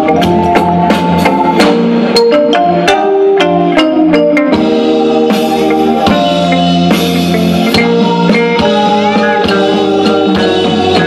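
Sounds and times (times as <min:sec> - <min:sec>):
drum kit: 0:00.0 - 0:11.0
electric guitars: 0:00.0 - 0:11.0.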